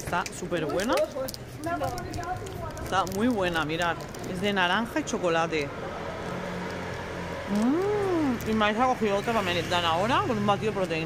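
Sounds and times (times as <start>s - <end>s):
street background hum: 0.0s - 11.0s
woman humming mmm with food: 7.5s - 8.4s.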